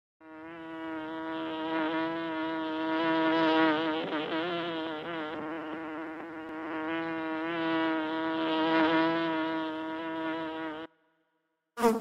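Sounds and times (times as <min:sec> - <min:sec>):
honey bee buzzing: 0:00.2 - 0:10.9, 0:11.8 - 0:12.0.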